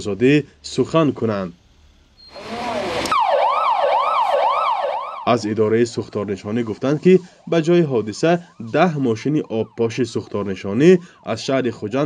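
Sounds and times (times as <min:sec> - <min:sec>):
fire engine siren wailing: 0:02.2 - 0:12.0.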